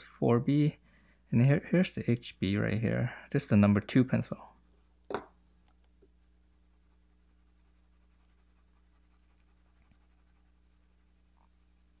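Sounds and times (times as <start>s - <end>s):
low electrical hum: 0.0s - 12.0s
pencil scratching on paper: 3.6s - 5.0s, 6.1s - 12.0s.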